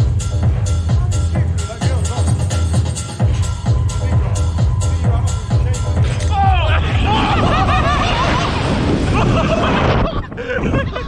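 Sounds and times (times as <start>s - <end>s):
low rumble: 2.3s - 10.2s
young men laughing loudly: 6.3s - 11.0s.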